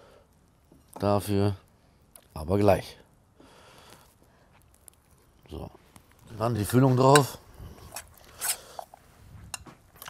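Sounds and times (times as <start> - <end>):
metal spoon scraping bowl: 7.1 - 9.0.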